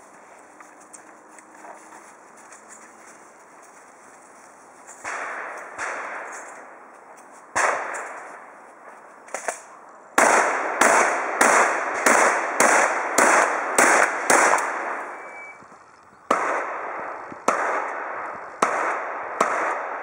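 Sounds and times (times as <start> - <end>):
shotgun shots echoing: 5.0 - 6.7, 7.5 - 8.5, 9.3 - 15.5, 16.3 - 20.0.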